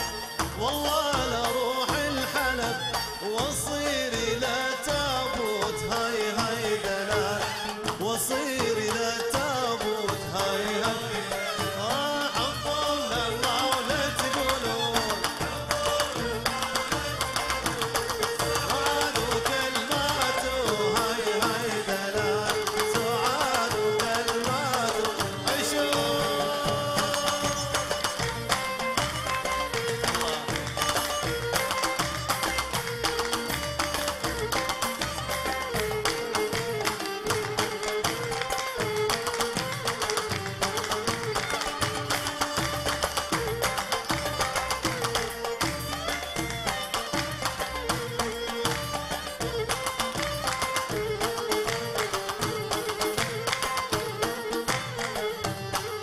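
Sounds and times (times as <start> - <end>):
hand percussion beat: 0.0 - 56.0
oud melody: 0.0 - 56.0
plucked strings: 0.0 - 56.0.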